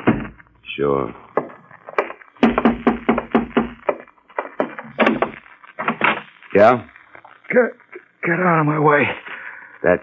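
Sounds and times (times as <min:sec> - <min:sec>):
sharp wooden knocks: 0:00.0 - 0:00.4, 0:01.4 - 0:06.3.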